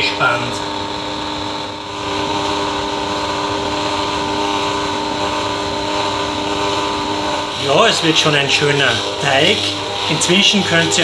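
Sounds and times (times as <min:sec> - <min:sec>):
kitchen machine motor humming: 0:00.0 - 0:11.0.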